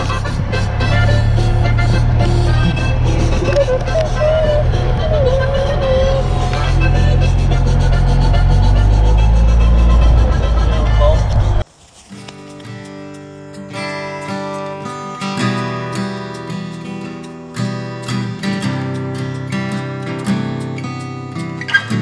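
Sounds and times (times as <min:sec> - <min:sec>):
golf cart motor hum: 0:00.0 - 0:11.6
acoustic guitar music: 0:00.0 - 0:22.0.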